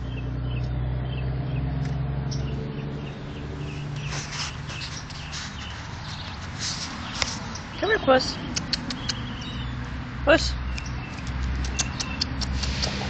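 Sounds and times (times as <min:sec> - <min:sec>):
scuffing and rustling: 0:03.7 - 0:07.8.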